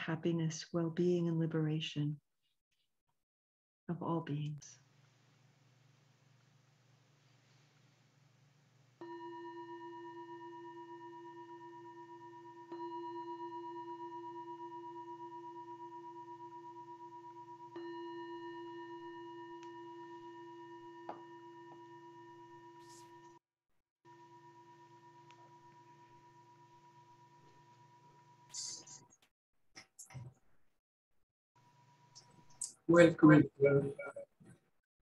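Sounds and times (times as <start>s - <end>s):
meditation bell ringing: 9.0s - 22.8s.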